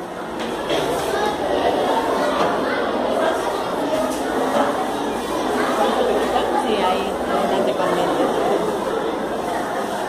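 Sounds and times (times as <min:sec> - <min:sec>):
many voices chattering: 0:00.0 - 0:10.0.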